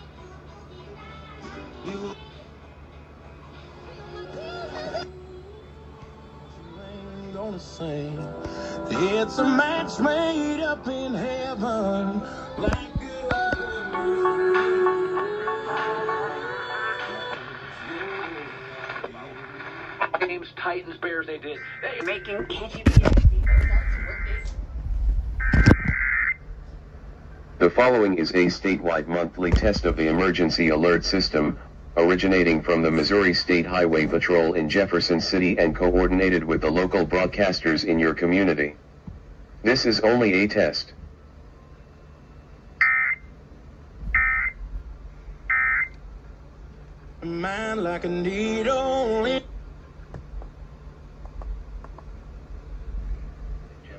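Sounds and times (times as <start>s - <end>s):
music through small radio speaker: 3.5s - 24.6s.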